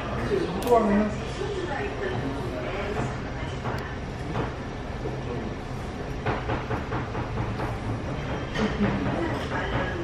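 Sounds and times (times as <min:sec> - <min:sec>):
restaurant hum: 0:00.0 - 0:10.0.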